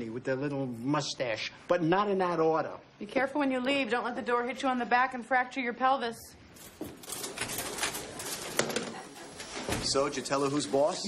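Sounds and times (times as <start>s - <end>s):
office clicks and clatter: 6.6s - 10.4s
door opening and closing: 6.8s - 10.2s
door closing thud: 9.6s - 10.1s.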